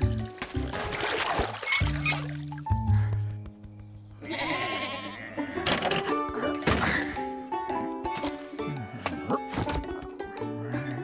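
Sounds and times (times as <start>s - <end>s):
cartoon background music: 0.0s - 3.5s, 4.2s - 11.0s
sheep bleating: 4.2s - 5.7s.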